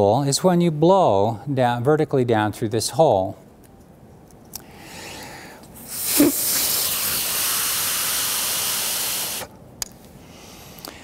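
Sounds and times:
breath blown through spool: 4.9s - 9.5s.

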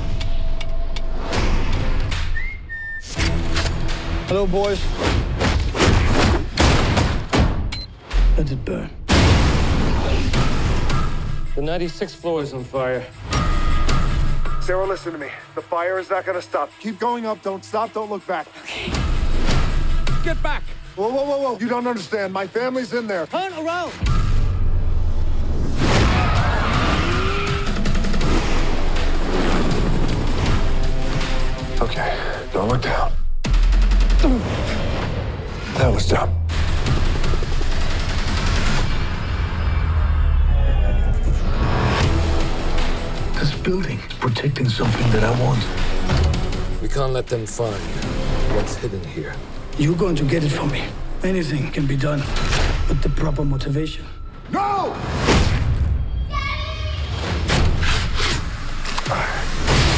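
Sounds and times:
trailer music: 0.0s - 59.9s.

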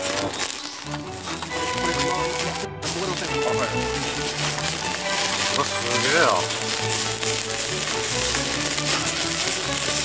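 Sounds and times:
background music: 0.0s - 10.0s
meat sizzling on charcoal grill: 0.0s - 10.0s.

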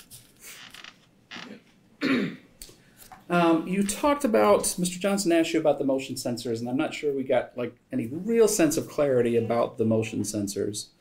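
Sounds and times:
faint creaks: 0.4s - 1.8s.

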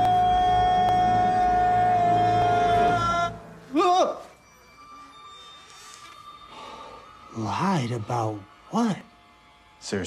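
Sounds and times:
man yelling on high pitch: 0.2s - 4.3s.

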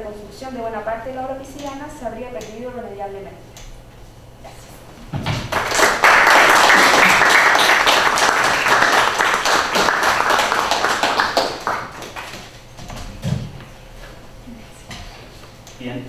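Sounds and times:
audience applauding: 5.4s - 12.6s.

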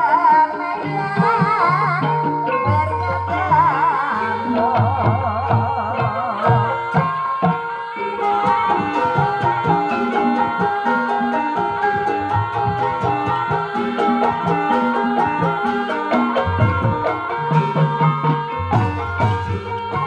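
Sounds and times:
hand-drum beat: 0.3s - 20.0s
metallophones ringing melody: 2.2s - 20.0s.

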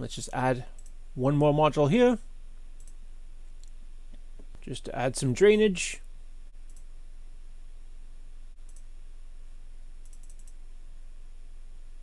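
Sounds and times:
low hum and hiss: 0.0s - 12.0s
computer mouse clicks: 0.8s - 1.0s, 6.7s - 6.9s, 8.6s - 8.9s, 10.0s - 10.6s.

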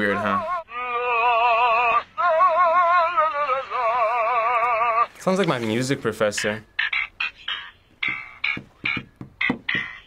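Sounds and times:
person singing operatic notes: 0.0s - 5.2s.

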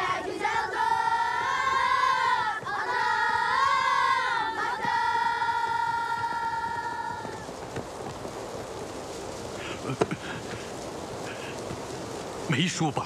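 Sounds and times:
high voices singing in harmony: 0.0s - 7.5s
faint hiss: 0.0s - 13.0s.

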